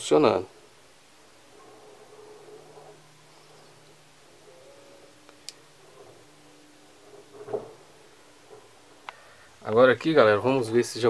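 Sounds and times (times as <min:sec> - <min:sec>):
faint low hum: 0:00.0 - 0:11.0
faint wavering tones: 0:00.5 - 0:10.7.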